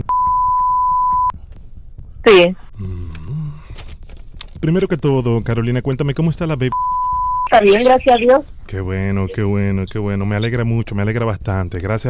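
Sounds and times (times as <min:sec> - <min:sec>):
censor bleep: 0:00.0 - 0:01.3, 0:06.7 - 0:08.4.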